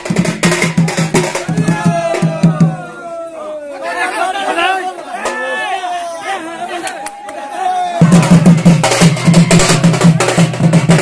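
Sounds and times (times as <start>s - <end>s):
crowd of men talking and calling out: 0.4s - 11.0s.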